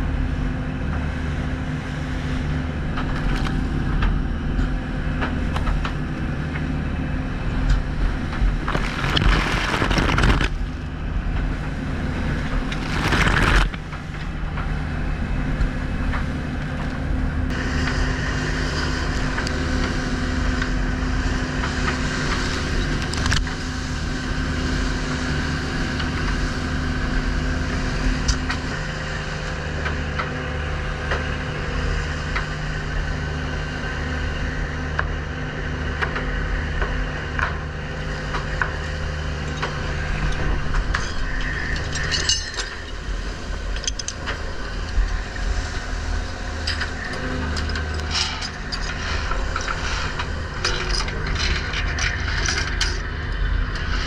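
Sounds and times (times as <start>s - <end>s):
boat engine running: 0.0s - 54.0s
sea water wash and spray: 5.4s - 16.6s, 17.5s - 30.2s, 42.5s - 48.1s.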